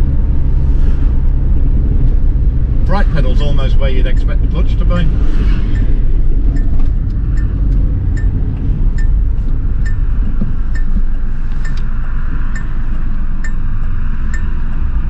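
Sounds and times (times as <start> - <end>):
car engine and road noise: 0.0 - 15.0
turn-signal flasher ticking: 5.8 - 14.8.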